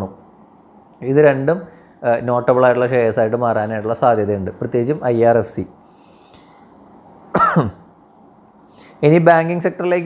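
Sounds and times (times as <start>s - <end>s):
man coughing: 7.3s - 7.9s.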